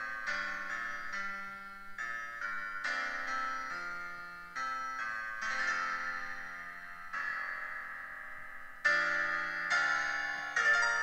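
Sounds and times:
piano chords: 0:00.0 - 0:11.0.

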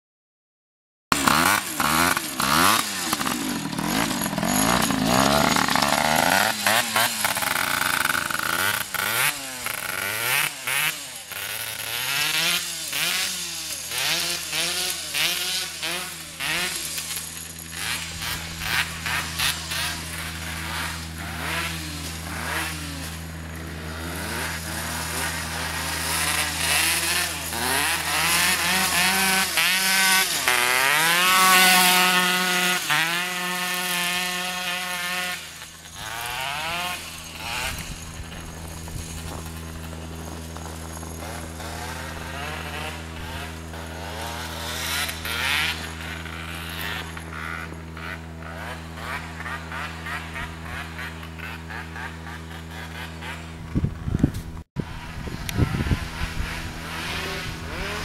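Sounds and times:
go-kart engine revving: 0:01.1 - 0:58.0.

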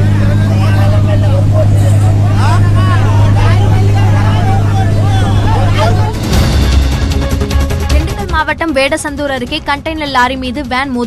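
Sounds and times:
voices calling out: 0:00.0 - 0:06.4
boat engine droning: 0:00.0 - 0:11.0.

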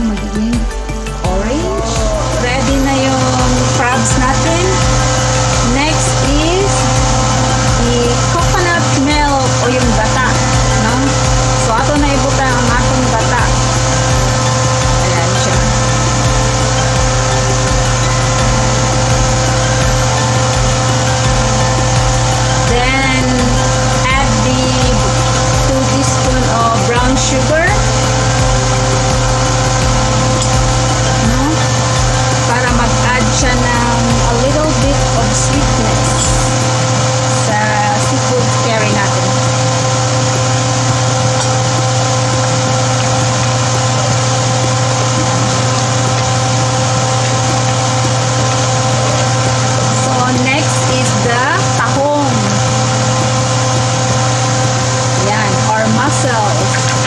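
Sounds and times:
loud machine hum: 0:00.0 - 0:57.0
low rumble: 0:00.0 - 0:57.0.

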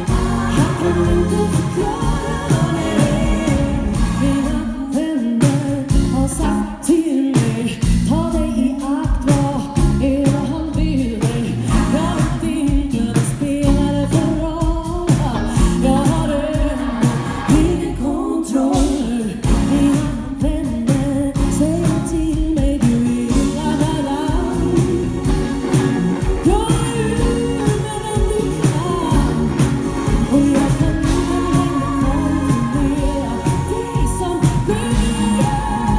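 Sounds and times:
live funk-soul band: 0:00.0 - 0:35.9
woman singing lead: 0:00.0 - 0:35.9.

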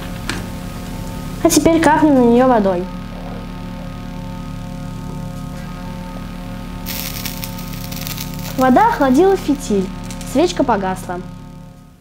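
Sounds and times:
candle wick hissing sizzle: 0:06.8 - 0:10.5.

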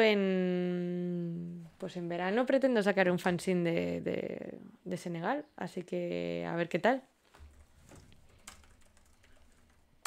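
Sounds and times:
typing on laptop keyboard: 0:07.5 - 0:10.0.

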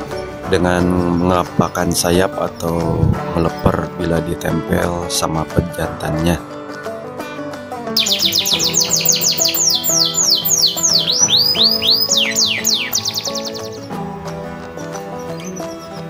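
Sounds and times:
background music: 0:00.0 - 0:16.0
canary singing trill: 0:08.0 - 0:14.0, 0:15.0 - 0:16.0.

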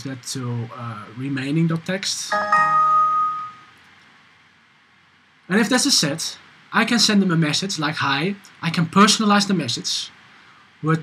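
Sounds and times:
faint steady hiss: 0:00.0 - 0:11.0
computer alert chime: 0:02.3 - 0:03.7.

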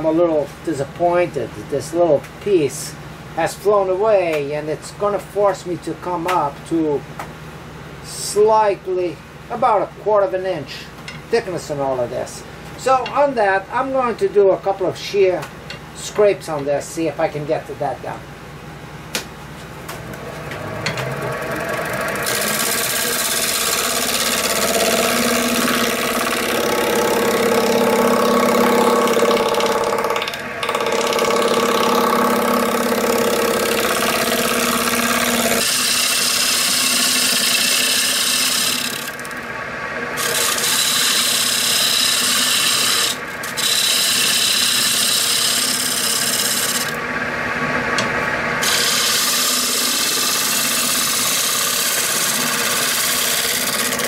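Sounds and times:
wood lathe running: 0:20.0 - 0:54.0
scraper rasping on spinning wood: 0:21.1 - 0:39.2, 0:40.2 - 0:47.0, 0:48.6 - 0:54.0.

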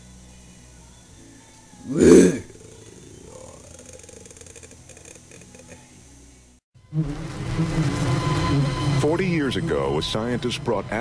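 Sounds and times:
tiger roaring: 0:01.8 - 0:05.3.

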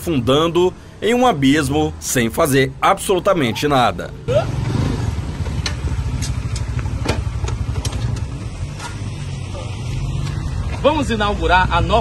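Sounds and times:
motor scooter engine running: 0:04.3 - 0:10.8.

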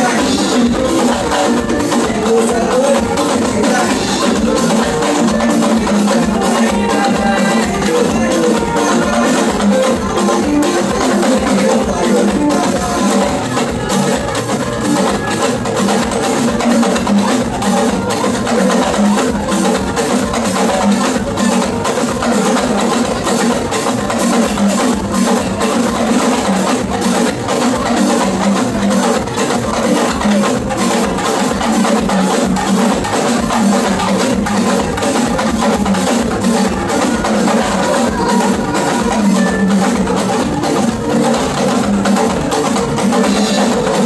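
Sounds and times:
drum ensemble playing: 0:00.0 - 0:44.0
talking drums: 0:00.0 - 0:44.0.

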